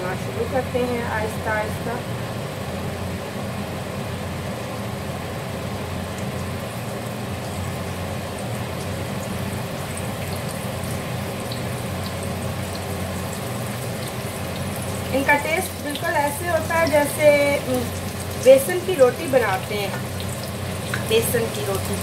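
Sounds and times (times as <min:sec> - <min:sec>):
fritters sizzling in hot oil: 0:00.0 - 0:22.0
steady low hum: 0:00.0 - 0:22.0
oil crackling: 0:06.0 - 0:22.0.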